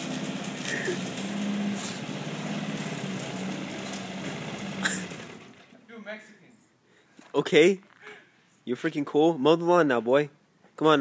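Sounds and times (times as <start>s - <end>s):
lawn mower engine running: 0.0s - 5.8s.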